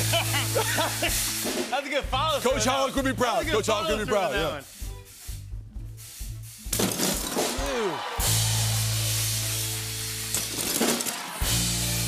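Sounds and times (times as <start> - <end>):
glass shattering: 6.7 - 7.6, 10.3 - 11.4.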